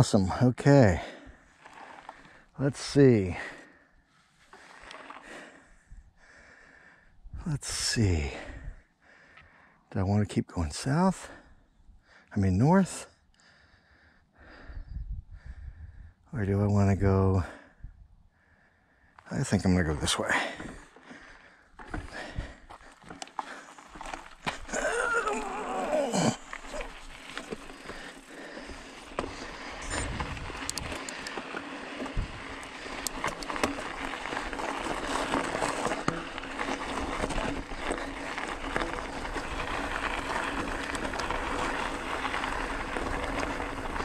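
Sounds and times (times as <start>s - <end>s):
bicycle tyres crunching on gravel: 0.9s - 6.8s, 19.5s - 44.0s
bicycle frame rattling: 1.5s - 2.4s, 20.4s - 44.0s
wind on microphone: 14.7s - 16.1s, 29.7s - 31.0s, 32.1s - 32.6s.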